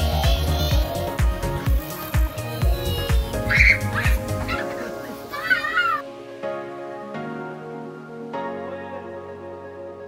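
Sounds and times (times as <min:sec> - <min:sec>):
background music: 0:00.0 - 0:10.0
high animal call: 0:03.4 - 0:06.0.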